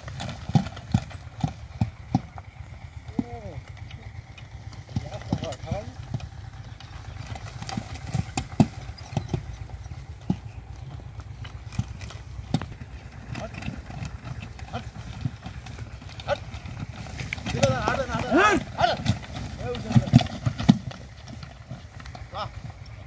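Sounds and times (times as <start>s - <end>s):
cart low rumble: 0.0s - 23.0s
horse hooves clip-clopping on dirt: 0.0s - 23.0s.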